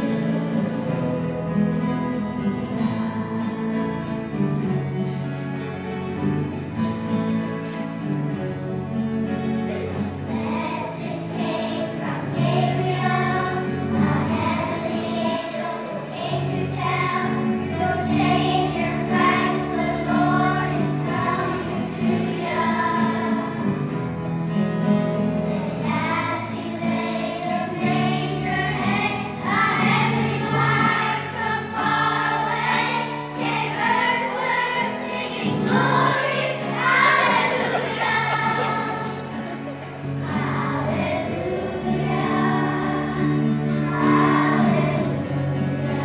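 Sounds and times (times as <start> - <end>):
children's choir singing: 0.0 - 46.0
low held notes: 25.2 - 46.0.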